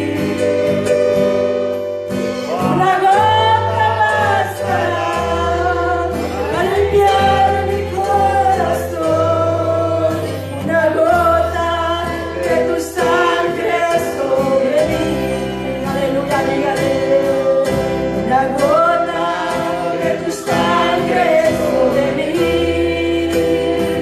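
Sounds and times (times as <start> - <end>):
woman singing into a microphone: 0.0 - 1.0, 2.4 - 24.0
band playing bass and chords: 0.0 - 24.0.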